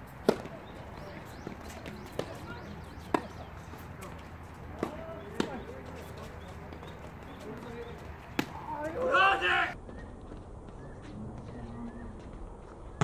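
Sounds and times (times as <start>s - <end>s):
rackets striking tennis ball: 0.0s - 9.2s
tennis ball bouncing on hard court: 0.1s - 8.9s.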